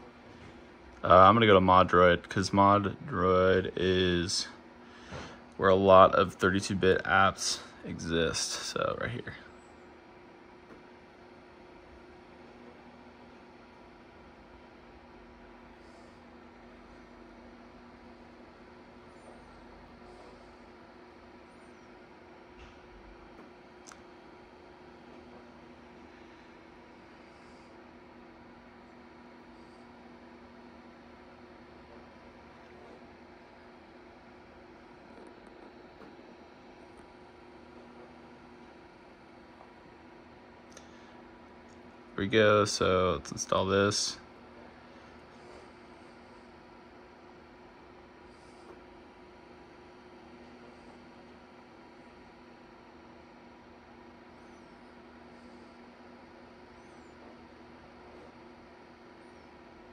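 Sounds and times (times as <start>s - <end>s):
low electrical hum: 0.0s - 59.9s.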